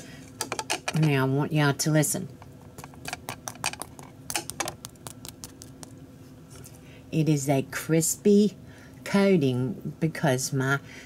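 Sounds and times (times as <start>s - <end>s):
fingers scratching crispy crust: 2.7s - 6.0s.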